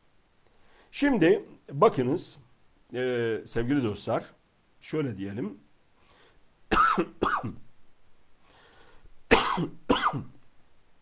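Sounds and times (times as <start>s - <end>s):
man coughing: 6.7s - 7.6s, 9.3s - 10.4s.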